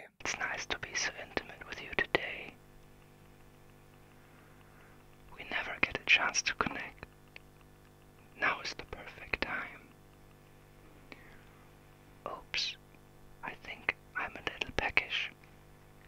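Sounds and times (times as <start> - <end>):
man whispering: 0.0 - 2.6, 5.3 - 7.2, 8.3 - 10.0, 12.2 - 12.8, 13.4 - 15.4.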